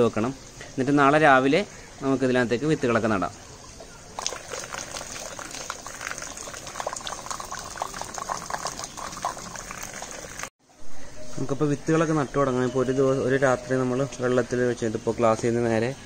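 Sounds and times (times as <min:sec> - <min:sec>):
water pattering on peat: 0:03.0 - 0:10.5.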